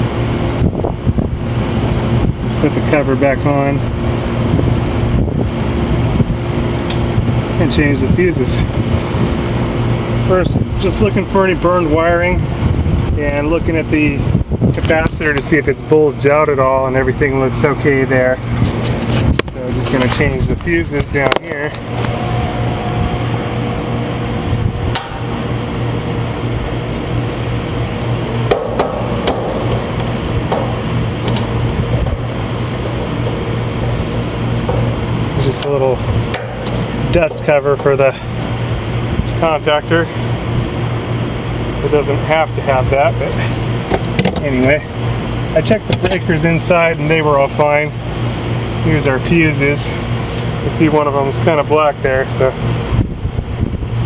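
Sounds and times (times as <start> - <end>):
faint steady hum: 0.0 - 54.0
low rumble: 18.4 - 39.6
metal clicks and knocks: 28.5 - 32.1.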